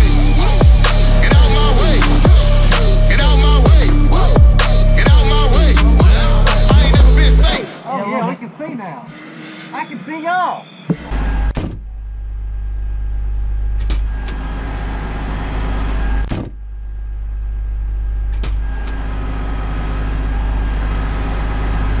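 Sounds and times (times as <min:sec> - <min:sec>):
diesel engine rumbling: 0:00.0 - 0:09.2.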